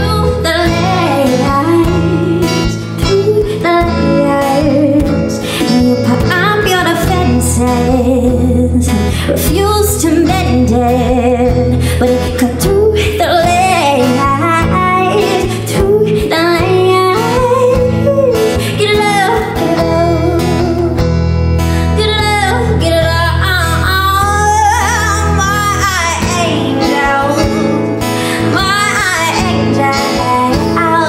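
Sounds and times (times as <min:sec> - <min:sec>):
drums: 0:00.0 - 0:31.0
guitar: 0:00.0 - 0:31.0
woman singing: 0:00.0 - 0:31.0.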